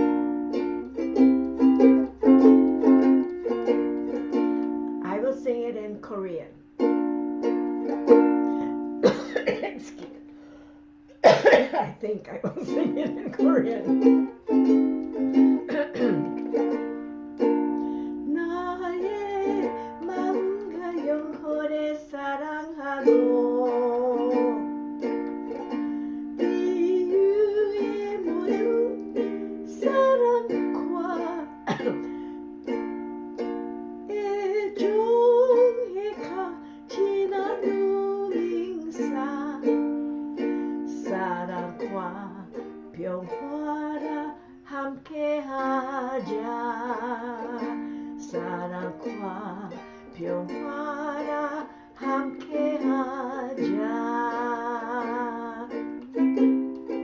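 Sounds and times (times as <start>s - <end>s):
ukulele strummed: 0.0s - 10.5s, 11.2s - 57.0s
person singing: 12.5s - 32.2s, 34.0s - 57.0s.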